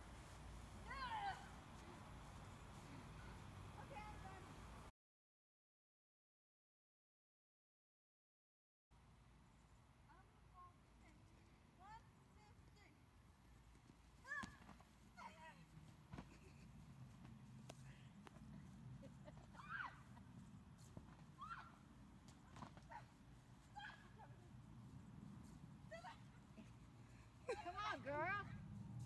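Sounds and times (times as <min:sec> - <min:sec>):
low steady rumble: 0:14.8 - 0:29.0
faint squeals and yelps: 0:21.4 - 0:21.8.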